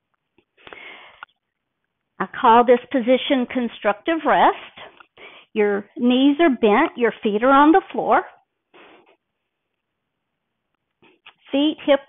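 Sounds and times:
person sniffing: 8.7 - 9.2.

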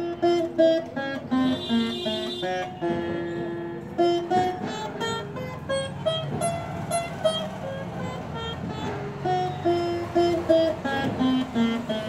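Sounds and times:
veena plucked notes: 0.0 - 12.0.

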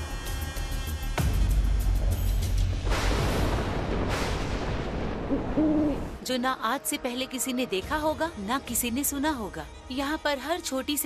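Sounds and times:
thunder rumbling: 2.8 - 6.3.

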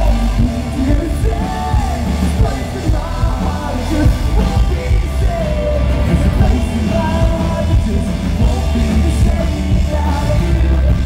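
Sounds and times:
live rock band playing: 0.0 - 11.0
male singer belting: 0.0 - 11.0.

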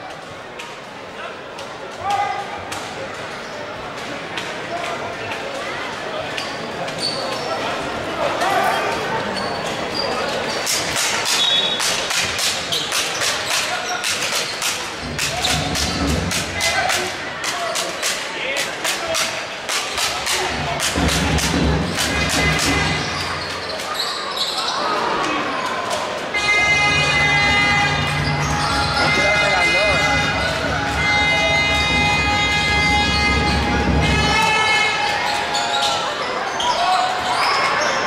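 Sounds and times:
crowd and player voices: 0.0 - 38.0.

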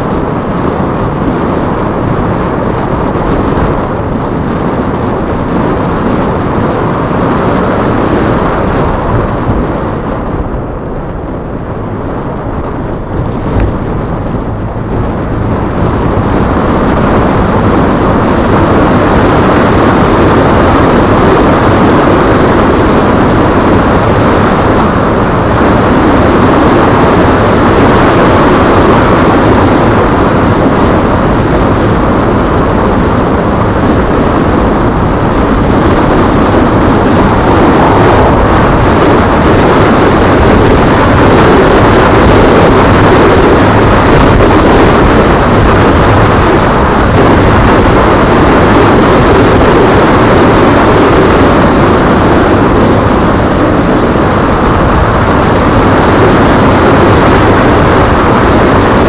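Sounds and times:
car engine rumble: 0.0 - 59.0.

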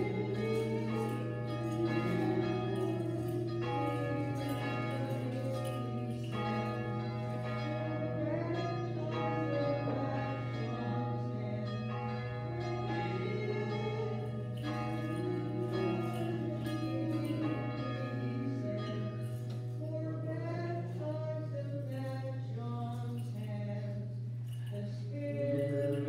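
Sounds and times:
church bells ringing: 0.0 - 26.0
steady low hum: 0.0 - 26.0.

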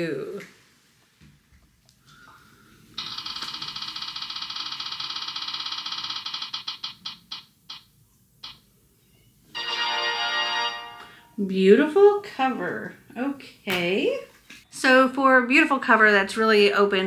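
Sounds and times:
spinning wheel ticks: 3.0 - 8.6.

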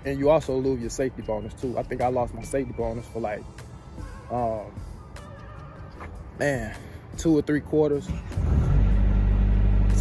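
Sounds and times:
large engine rumbling: 8.0 - 10.0.

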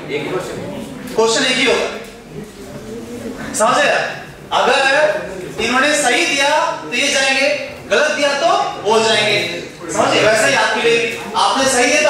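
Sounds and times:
man talking: 3.5 - 12.0.

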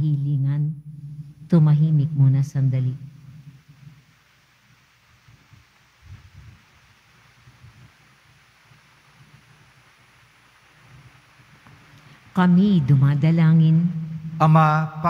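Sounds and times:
low hiss: 0.0 - 15.0
soft low rumbles: 0.0 - 15.0.

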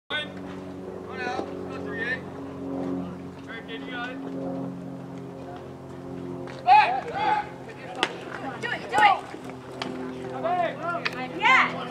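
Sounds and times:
low mechanical hum: 0.1 - 11.9
voices calling out: 5.3 - 11.9.

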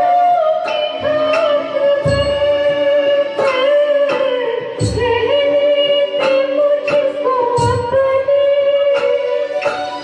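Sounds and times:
band accompaniment: 0.0 - 10.0
woman singing: 0.0 - 10.0.

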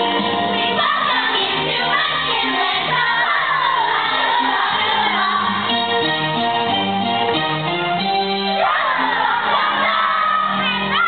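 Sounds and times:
stage-musical accompaniment: 0.0 - 11.0
children shouting together: 8.6 - 11.0.

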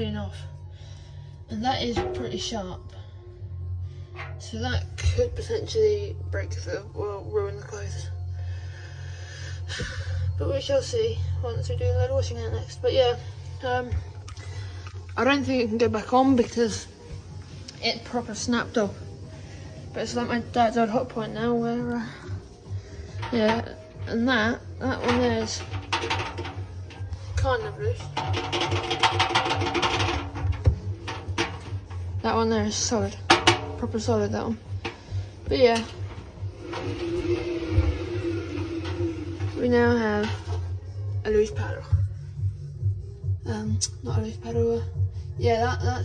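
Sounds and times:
low hum: 16.6 - 45.4
washing machine paddle rattling: 23.0 - 40.7.

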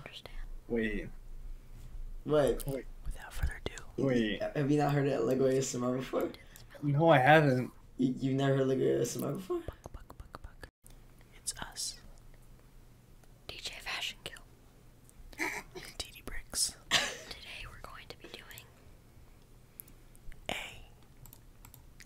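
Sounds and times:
whispering close to microphone: 0.0 - 0.4, 3.1 - 4.0, 11.3 - 12.0, 13.5 - 14.4, 16.0 - 16.8, 17.4 - 18.7, 20.5 - 21.0.

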